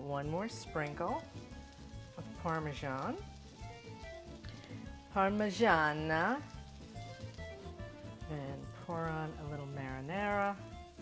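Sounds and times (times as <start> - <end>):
eggplant frying in oil: 0.0 - 11.0
quiet background music: 0.0 - 11.0.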